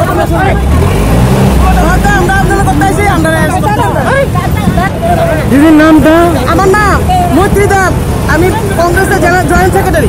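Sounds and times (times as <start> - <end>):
low rumble of road traffic: 0.0 - 10.0
voices speaking: 0.0 - 10.0.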